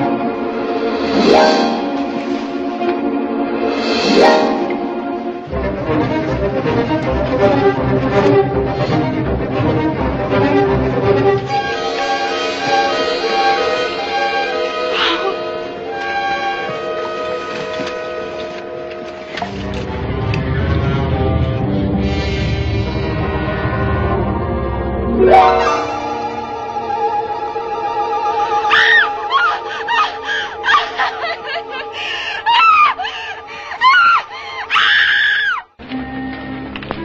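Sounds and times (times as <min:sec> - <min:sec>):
orchestral string tones: 0:00.0 - 0:32.1
dark low orchestral swell: 0:00.0 - 0:33.4
high-pitched human screaming: 0:28.7 - 0:30.8, 0:33.8 - 0:35.7.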